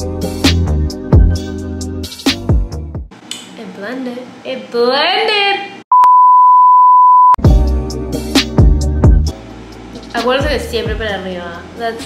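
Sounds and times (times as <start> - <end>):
music with sliding bass notes: 0.0 - 3.1, 7.4 - 12.0
censor bleep: 5.9 - 7.4.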